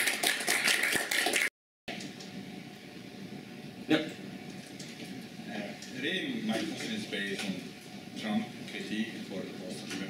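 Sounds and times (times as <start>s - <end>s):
small audience applauding: 0.0s - 1.5s.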